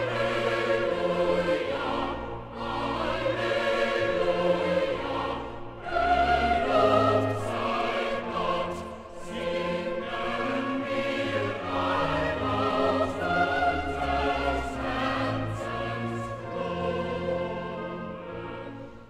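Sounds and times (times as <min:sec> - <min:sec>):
boys' choir singing: 0:00.0 - 0:18.9.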